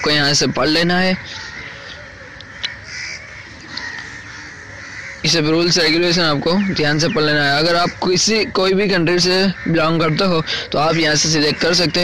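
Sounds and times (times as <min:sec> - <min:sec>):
birds calling: 0:00.0 - 0:12.0.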